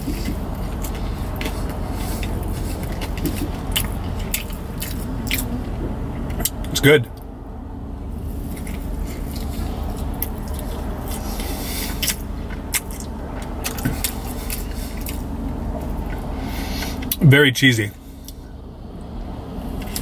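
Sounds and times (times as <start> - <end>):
man chewing: 0.0 - 7.3, 8.1 - 17.2, 18.0 - 18.5
car cabin rumble: 0.0 - 20.0
wet mouth clicks: 2.2 - 6.7.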